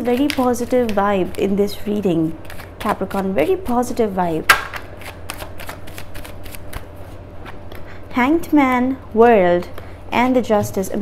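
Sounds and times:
cards being shuffled: 0.0 - 1.6, 2.4 - 3.3, 4.5 - 7.6.

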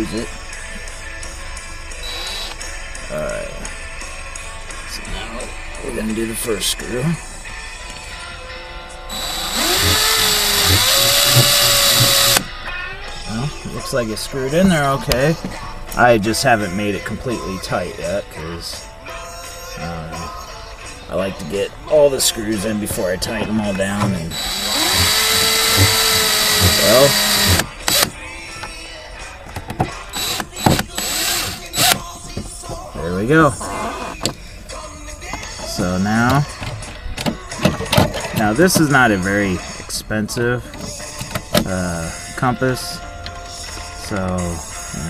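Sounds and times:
cordless drill driving a screw: 2.0 - 2.6, 9.1 - 12.5, 24.3 - 28.1, 30.2 - 32.0.

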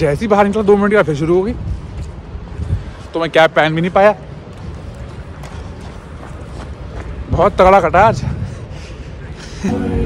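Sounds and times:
wind rumble on microphone: 0.0 - 3.3, 4.3 - 9.4.

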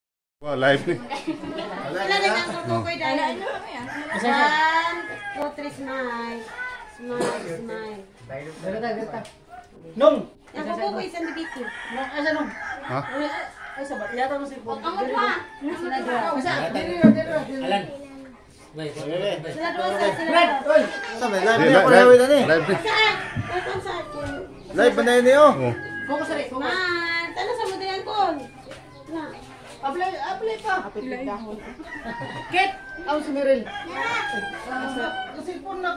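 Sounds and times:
people's voices: 0.7 - 8.6, 9.2 - 35.9
people and children talking: 0.8 - 35.9
rooster crowing: 3.7 - 7.8, 10.8 - 16.8, 19.6 - 29.5, 30.9 - 35.9.

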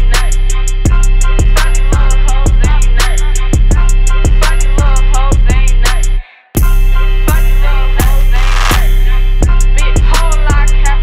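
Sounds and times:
deep sustained bass: 0.0 - 11.0
hip hop track: 0.0 - 11.0
kick drums: 0.9 - 3.0, 3.6 - 5.9, 6.6 - 10.7.

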